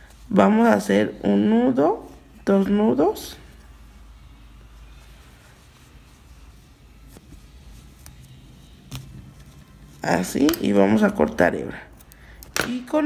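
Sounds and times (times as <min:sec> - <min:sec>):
steady low hum: 0:00.0 - 0:12.6.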